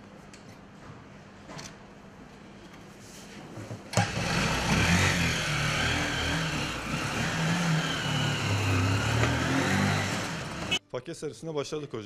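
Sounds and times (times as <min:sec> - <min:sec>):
small motorcycle engine pulling away: 0:04.0 - 0:10.8.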